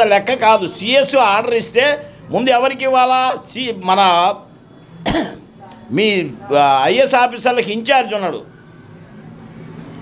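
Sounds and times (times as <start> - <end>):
man speaking: 0.0 - 4.5, 5.9 - 8.5
throat clearing: 5.0 - 5.5.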